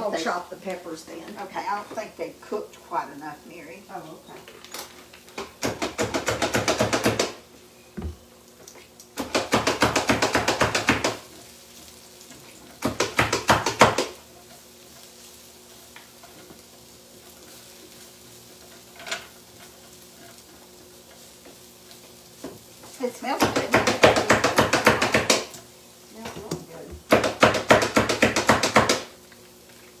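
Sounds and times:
utensil scraping skillet: 10.2 - 27.4.

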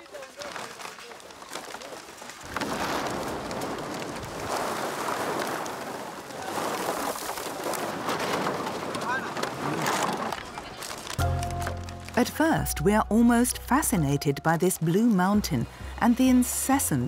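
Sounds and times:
plastic bottles rattling and crunching: 0.0 - 12.4.

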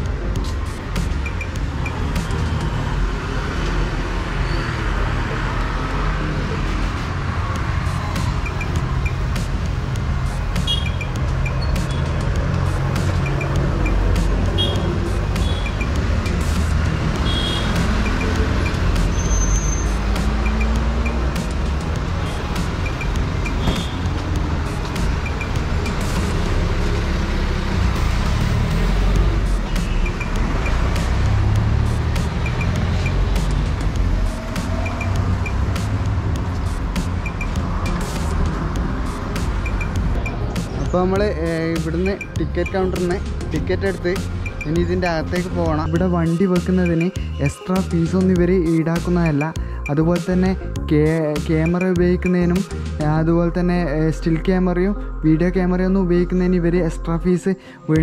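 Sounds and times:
rumble of passing vehicles: 0.0 - 56.8.

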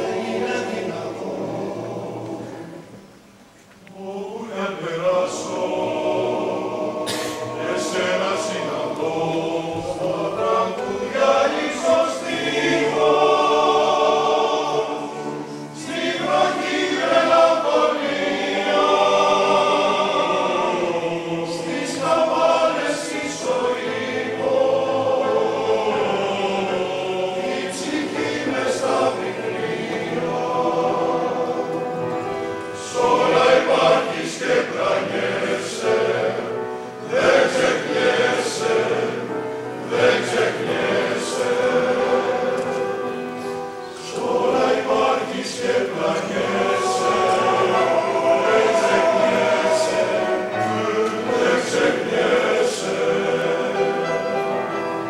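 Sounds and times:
male choir singing: 0.0 - 3.0, 3.9 - 55.0
piano accompaniment: 0.0 - 3.6, 4.4 - 55.0.

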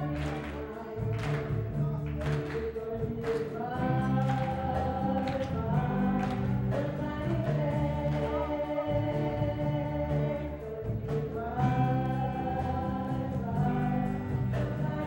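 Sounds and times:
backing voices: 0.0 - 15.0
bass: 0.0 - 15.0
woman singing into microphone: 0.0 - 15.0.

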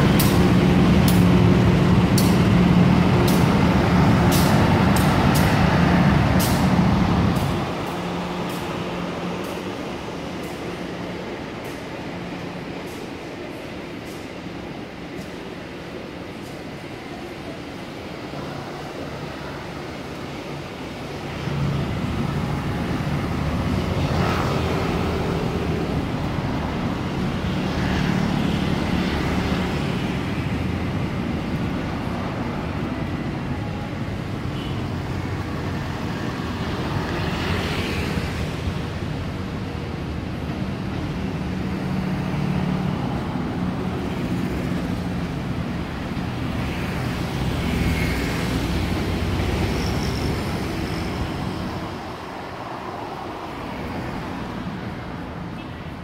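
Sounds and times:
freight train rolling past: 0.0 - 27.4
road traffic driving by: 0.0 - 56.0.

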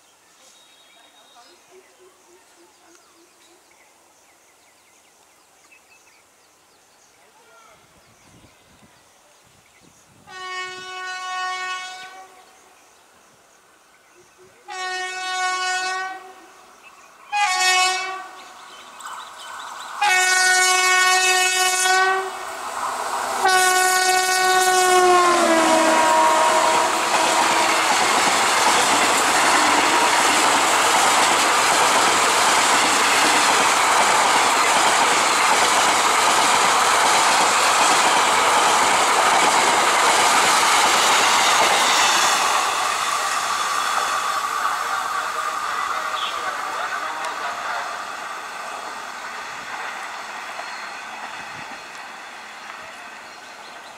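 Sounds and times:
locomotive horn blasts: 10.3 - 12.4, 14.7 - 16.5, 17.3 - 18.4, 20.0 - 22.4, 23.4 - 28.2, 29.4 - 30.3
train wheels clickety-clack: 27.1 - 45.4, 49.3 - 52.9.

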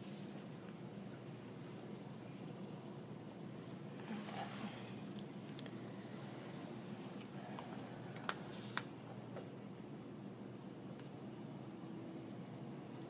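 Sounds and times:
soft wet handling sounds: 0.0 - 11.2
low room hum: 0.0 - 13.0.

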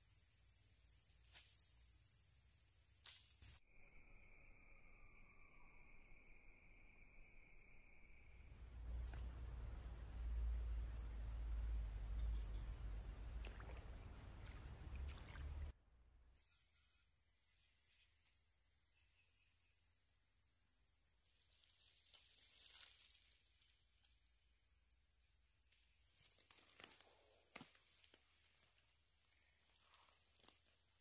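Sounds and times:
high-pitched insect drone: 0.0 - 12.6
low rumble and hiss: 8.5 - 15.7
faint ticks and rustles: 21.4 - 24.2.

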